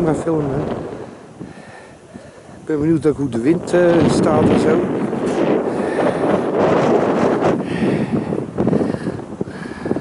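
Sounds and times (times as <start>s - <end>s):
strong wind on microphone: 0.0s - 10.0s.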